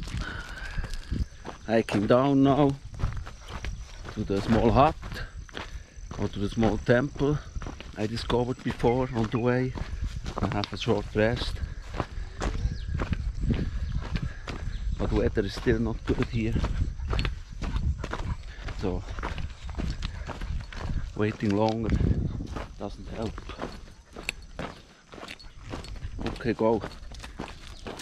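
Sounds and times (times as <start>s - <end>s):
walking footsteps: 0.0s - 28.0s
steady low rumble: 2.7s - 24.6s.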